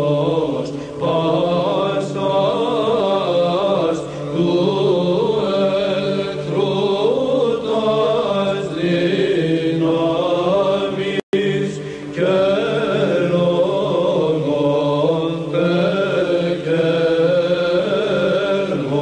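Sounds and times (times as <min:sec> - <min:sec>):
low held vocal drone: 0:00.0 - 0:19.0
voices chanting slow melody: 0:00.0 - 0:19.0.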